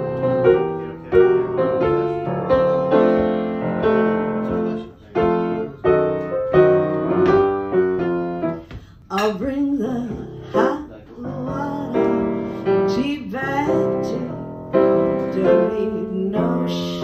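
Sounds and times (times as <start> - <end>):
slow jazz-blues piano: 0.0 - 17.0.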